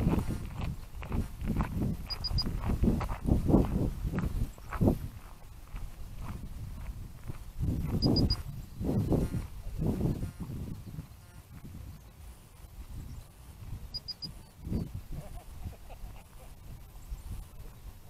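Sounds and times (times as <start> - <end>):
wind buffeting microphone: 0.0 - 18.0
quick high beeps: 2.1 - 2.5, 8.0 - 8.4, 13.9 - 14.5.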